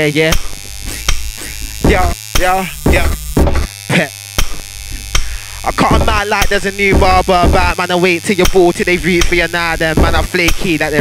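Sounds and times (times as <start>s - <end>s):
low electrical hum: 0.0s - 11.0s
sharp click: 0.3s - 1.5s, 8.4s - 8.6s, 9.2s - 9.5s, 10.4s - 10.7s
man laughing into a microphone: 3.8s - 4.7s.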